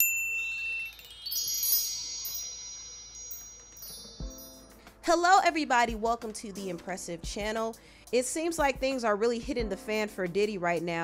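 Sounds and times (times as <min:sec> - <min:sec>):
bright high chime notes: 0:00.0 - 0:05.1.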